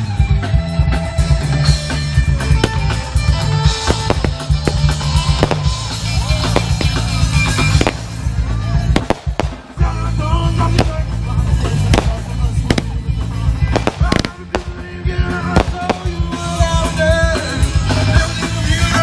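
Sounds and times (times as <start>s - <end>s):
music: 0.0s - 19.0s
voices: 2.2s - 19.0s
fireworks bangs: 2.5s - 9.9s, 10.6s - 17.2s.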